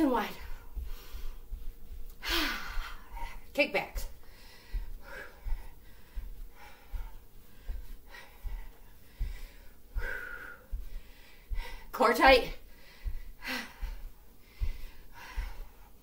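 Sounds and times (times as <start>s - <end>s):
bare feet thudding on carpet: 0.0s - 16.0s
woman breathing: 0.1s - 16.0s.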